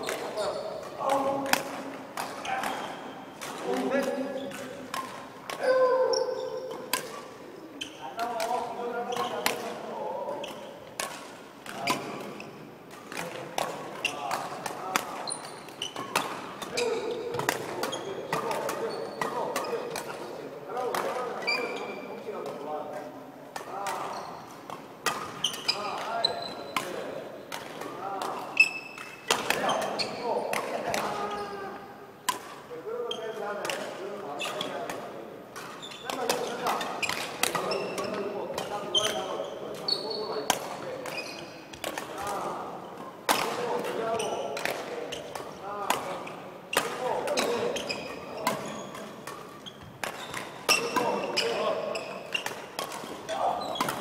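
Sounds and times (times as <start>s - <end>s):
sneakers squeaking on wooden floor: 0.0s - 20.3s, 21.1s - 22.3s, 23.7s - 27.1s, 28.2s - 31.6s, 32.9s - 33.8s, 34.4s - 34.9s, 35.6s - 54.0s
rackets striking shuttlecocks: 0.0s - 54.0s.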